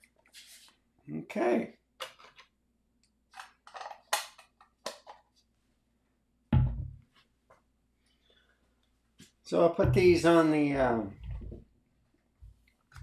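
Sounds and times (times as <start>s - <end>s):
heavy thump: 6.6s - 7.0s.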